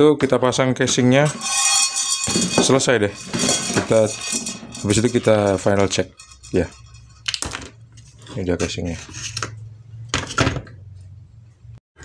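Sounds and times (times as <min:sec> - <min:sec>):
plastic parts knocking and clattering: 0:07.2 - 0:07.8.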